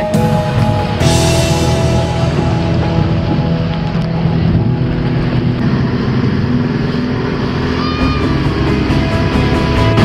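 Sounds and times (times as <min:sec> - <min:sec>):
motorboat engine running: 0:00.0 - 0:10.0
water rushing: 0:00.0 - 0:10.0.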